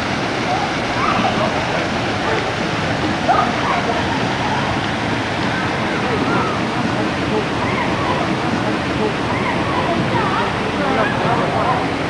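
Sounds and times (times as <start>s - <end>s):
faint distant voices: 0.0s - 12.0s
rushing wash of noise: 0.0s - 12.0s.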